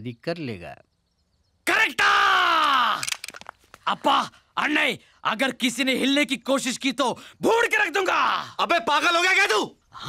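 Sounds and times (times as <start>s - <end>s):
person yelling: 1.7s - 3.1s.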